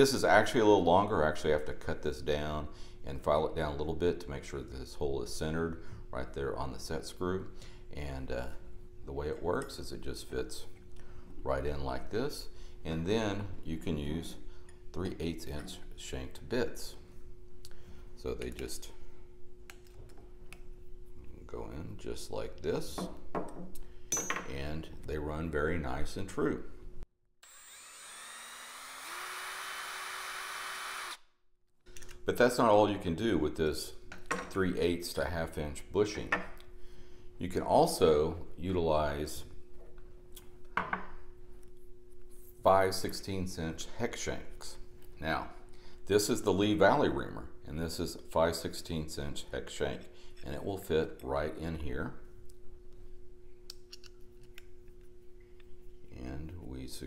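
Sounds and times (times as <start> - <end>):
faint steady hum: 0.0 - 29.6, 31.9 - 57.0
electric drill motor whine: 27.4 - 31.3.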